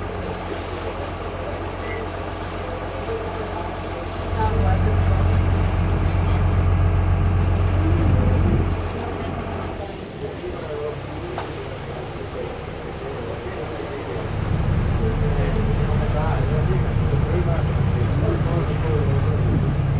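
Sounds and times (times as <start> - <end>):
boat engine humming: 0.0 - 19.9.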